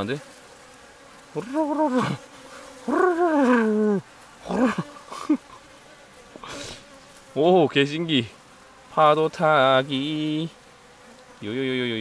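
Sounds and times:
bee colony humming: 0:00.0 - 0:12.0
man's wavering ohh sounds: 0:01.4 - 0:05.7.

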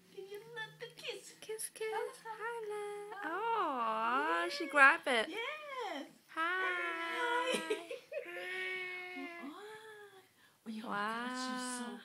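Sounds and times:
baby whining: 0:08.3 - 0:09.5.

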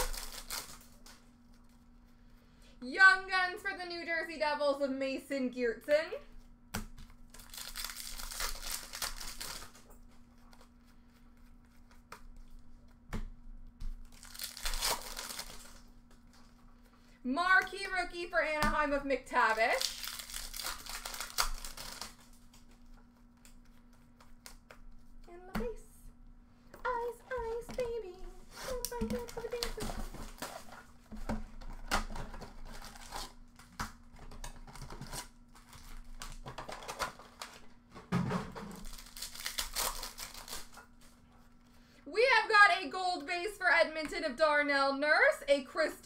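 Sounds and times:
foil wrappers crinkling and tearing: 0:00.0 - 0:02.1, 0:07.0 - 0:13.0, 0:13.9 - 0:16.8, 0:19.4 - 0:25.2, 0:28.5 - 0:37.8, 0:38.6 - 0:41.8
cards rustling: 0:07.1 - 0:13.0, 0:19.4 - 0:25.2, 0:38.8 - 0:41.8.

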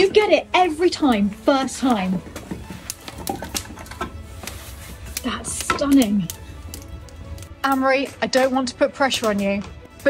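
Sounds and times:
fire popping: 0:00.0 - 0:10.0
wood fire crackling: 0:00.0 - 0:10.0.

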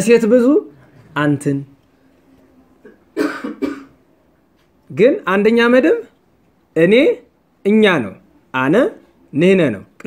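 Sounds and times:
person coughing: 0:02.8 - 0:04.0.

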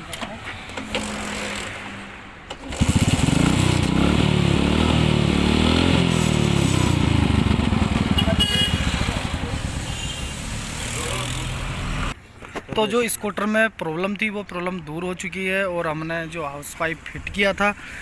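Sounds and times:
scooter engine starting and running: 0:02.5 - 0:10.3.

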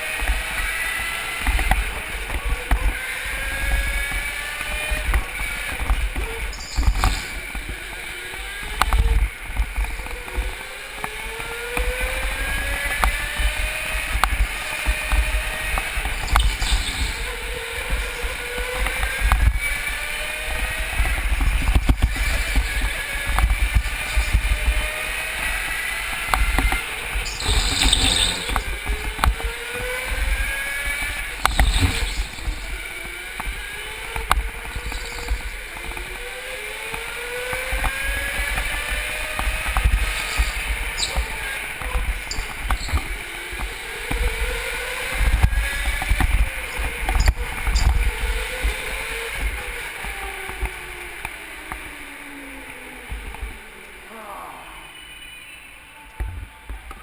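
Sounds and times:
go-kart motor whining: 0:00.0 - 0:57.0
low rumble of kart on track: 0:00.0 - 0:57.0.

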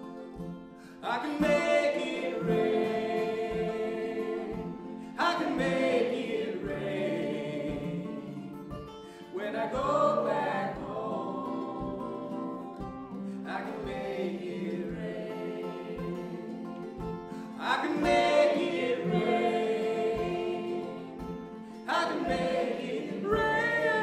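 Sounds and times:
acoustic guitar: 0:00.0 - 0:24.0
mandolin: 0:00.0 - 0:24.0
voices singing in harmony: 0:00.8 - 0:24.0.

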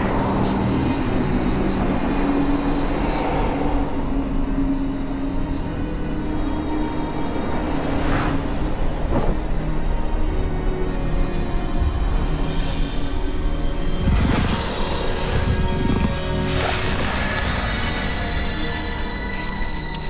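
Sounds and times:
low rumbling drone: 0:00.0 - 0:20.0
sweeping whoosh: 0:06.7 - 0:10.0.

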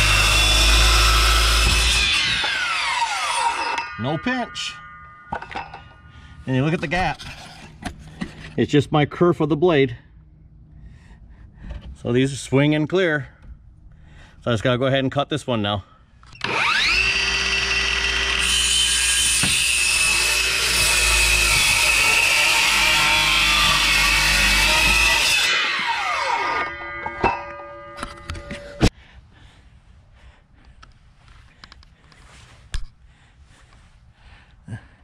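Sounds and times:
circular saw cutting wood: 0:00.0 - 0:06.1, 0:16.4 - 0:28.9.

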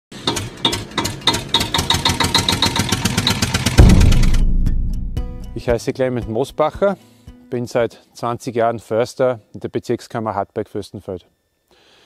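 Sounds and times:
deep low hit: 0:03.8 - 0:05.7.

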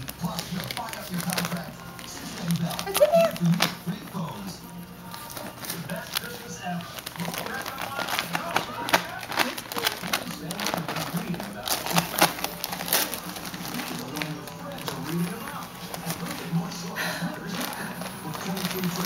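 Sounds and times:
background music: 0:00.0 - 0:19.0
wrapping paper crinkling and tearing: 0:00.0 - 0:19.0
voices: 0:00.1 - 0:19.0.

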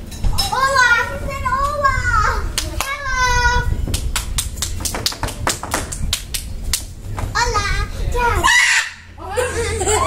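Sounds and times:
rapid sharp taps: 0:04.2 - 0:06.8.

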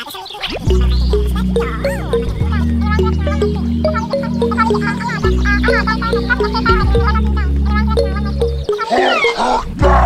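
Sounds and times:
background music with steady beat: 0:00.6 - 0:10.0.

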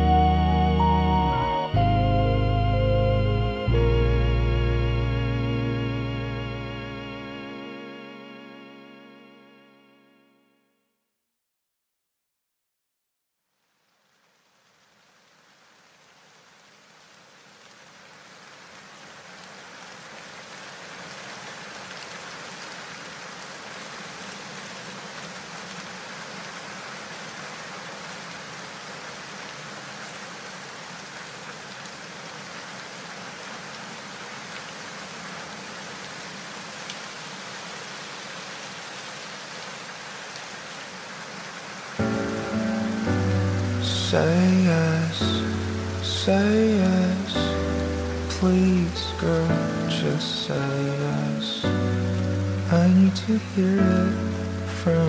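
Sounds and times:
song instruments: 0:00.0 - 0:10.6, 0:42.0 - 0:55.0
rain falling: 0:13.5 - 0:55.0.

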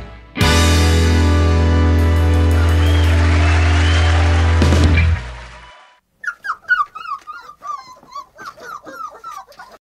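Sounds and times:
outro music: 0:00.0 - 0:05.9
dog whining: 0:06.2 - 0:09.8.

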